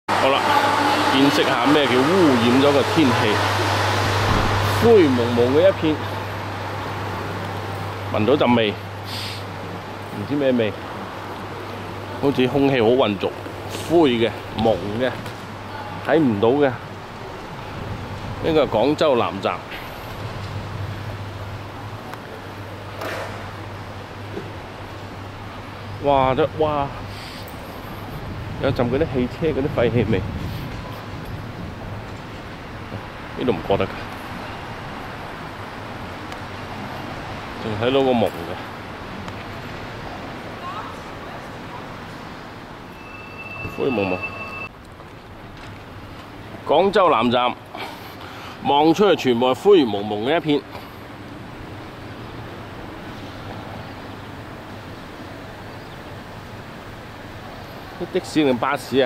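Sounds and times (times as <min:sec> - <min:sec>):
roadside traffic rushing: 0:00.0 - 0:59.0
car engine and tyres drone: 0:00.1 - 0:14.2.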